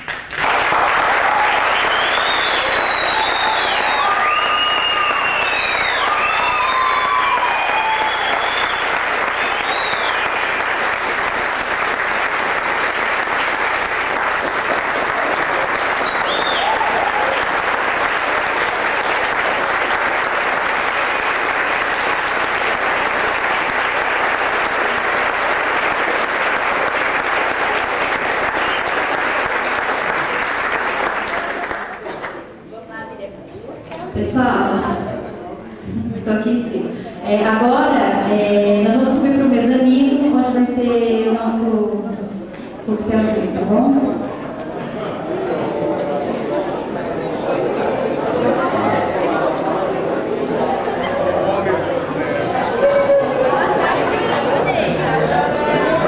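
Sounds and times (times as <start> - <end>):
audience cheering: 0.0 - 31.9, 52.4 - 56.0
audience applauding: 0.0 - 32.5, 44.2 - 56.0.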